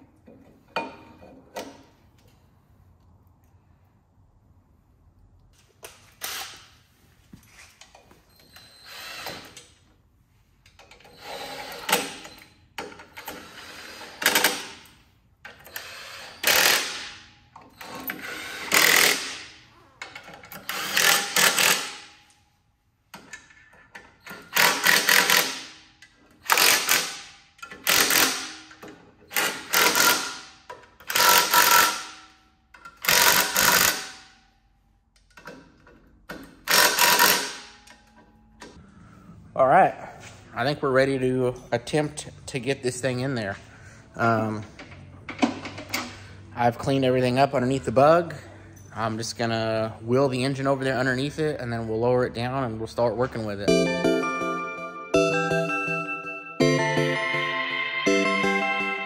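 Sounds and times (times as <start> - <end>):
cordless impact wrench bursts: 15.5 - 17.2, 17.8 - 19.5, 20.6 - 22.1, 24.4 - 25.8, 26.4 - 28.6, 29.3 - 32.2, 33.0 - 34.3, 36.6 - 37.7.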